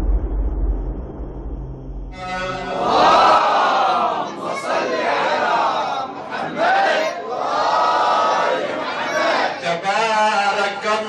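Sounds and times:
man chanting into microphone: 9.5s - 11.0s.

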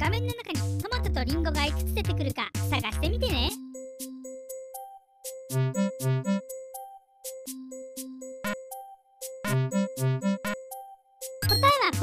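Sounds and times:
music with steady bass: 0.0s - 4.2s, 5.5s - 6.5s
electronic countdown jingle: 3.4s - 12.0s
person announcing: 11.5s - 12.0s.

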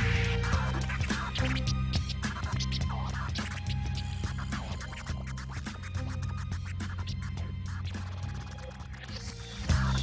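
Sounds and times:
hip hop instrumental beat: 0.0s - 10.0s
record scratching: 0.0s - 10.0s.

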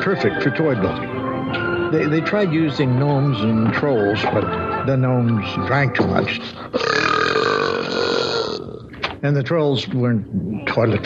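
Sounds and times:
long loud belch: 6.7s - 8.9s.

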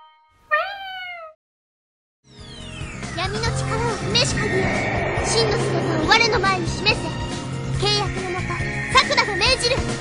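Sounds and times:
cat meowing: 0.5s - 1.4s.

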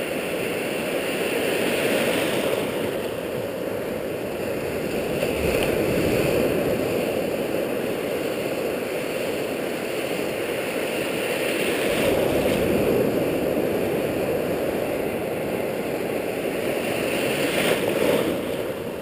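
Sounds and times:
ocean surf breaking: 0.0s - 19.0s.

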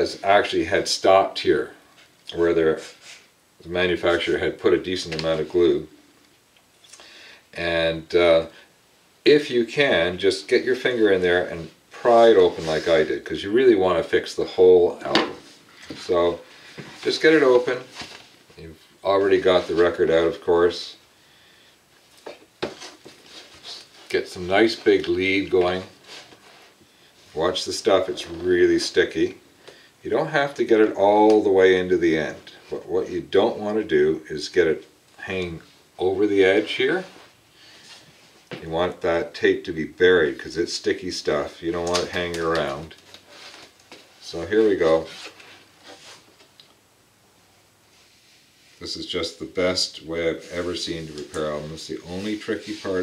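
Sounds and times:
tape rustling: 41.7s - 46.7s.

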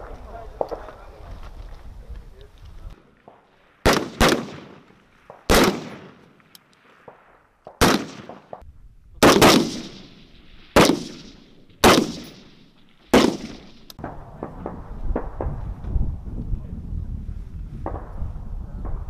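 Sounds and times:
rifle shots with echo: 3.1s - 8.6s, 9.2s - 15.7s.

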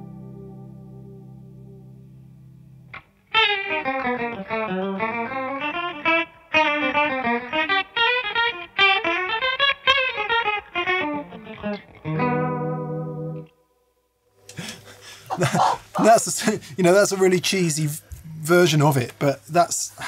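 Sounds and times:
electric guitar with vibrato warble: 0.0s - 14.0s.

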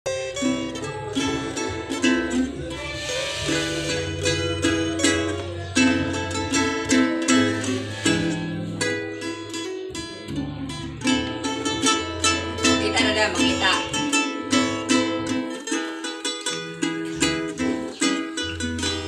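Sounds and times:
ukuleles and acoustic guitar: 0.0s - 19.0s
low held bass notes: 0.1s - 15.6s, 16.4s - 19.0s.

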